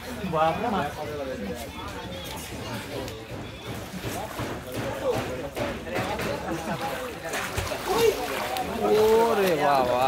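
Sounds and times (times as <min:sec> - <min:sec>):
people talking: 0:00.0 - 0:10.0
water rushing through sluice gate: 0:06.5 - 0:10.0.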